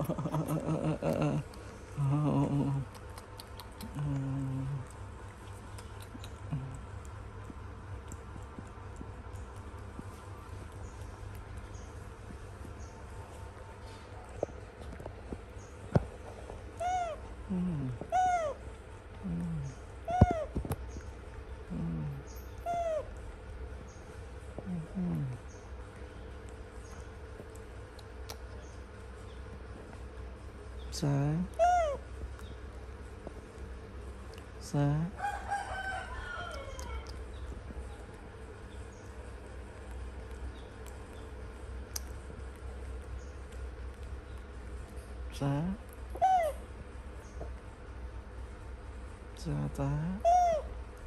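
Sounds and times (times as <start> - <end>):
low falling hums: 0.0 - 51.0
baby macaque squeak-coo: 16.8 - 17.2, 18.0 - 18.6, 20.0 - 20.6, 22.6 - 23.1, 31.5 - 32.0, 46.1 - 46.6, 50.2 - 50.7.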